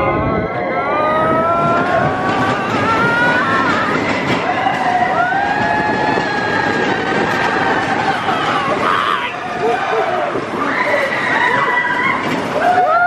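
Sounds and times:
high gliding whine or screams: 0.0s - 13.0s
roller coaster rumbling on track: 0.0s - 13.0s.

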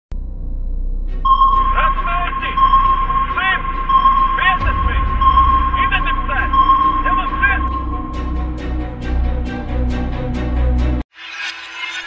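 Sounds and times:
low electronic hum: 0.1s - 8.8s
gliding electronic chirps: 1.2s - 8.8s
steady high electronic tone: 1.2s - 9.6s.

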